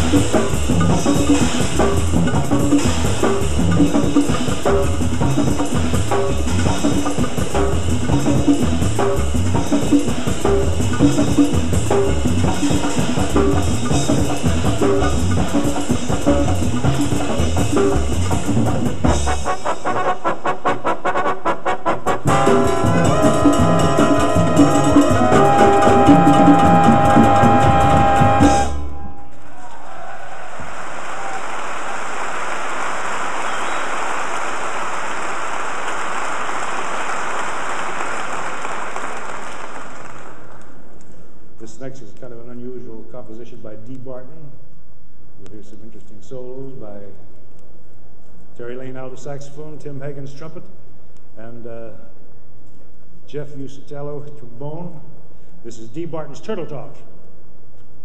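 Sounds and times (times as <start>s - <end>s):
big band jazz: 0.0s - 29.0s
audience applause: 29.4s - 40.8s.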